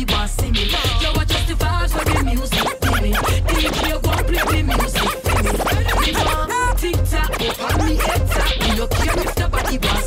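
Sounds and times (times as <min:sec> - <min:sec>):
dancehall music with heavy bass: 0:00.0 - 0:10.0
turntable scratching: 0:00.1 - 0:10.0.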